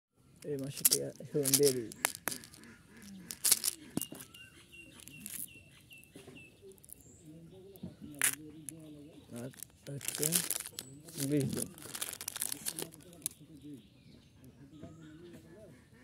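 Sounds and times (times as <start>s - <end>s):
bird chirping: 0.2s - 16.0s
hard candies clicking: 0.4s - 5.5s, 8.1s - 13.4s.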